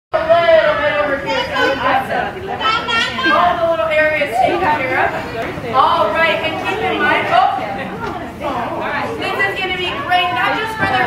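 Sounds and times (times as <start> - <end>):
voices talking and chattering: 0.2 - 11.0.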